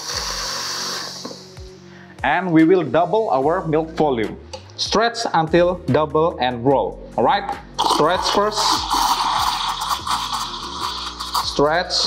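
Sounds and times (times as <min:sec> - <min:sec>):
steam wand hissing: 0:00.0 - 0:01.6, 0:07.8 - 0:12.0
background music with beat: 0:00.0 - 0:12.0.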